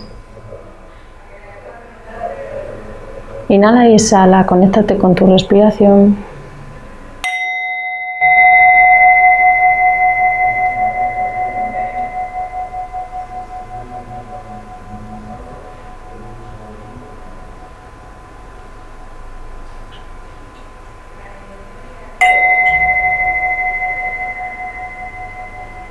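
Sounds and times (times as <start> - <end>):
singing bowl ringing: 7.2 - 19.0, 22.2 - 25.9.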